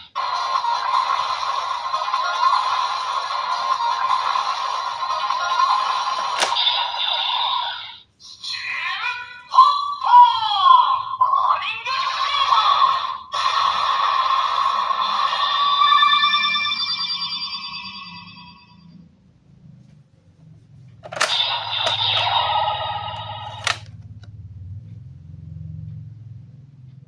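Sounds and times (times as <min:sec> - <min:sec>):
toy electronic sound effects: 0:00.1 - 0:08.8, 0:21.0 - 0:23.9
sharp click: 0:23.5 - 0:24.3.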